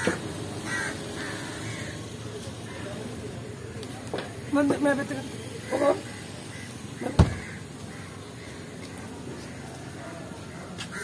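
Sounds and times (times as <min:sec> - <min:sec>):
outdoor background noise: 0:00.0 - 0:11.0
heavy thump: 0:07.2 - 0:07.5.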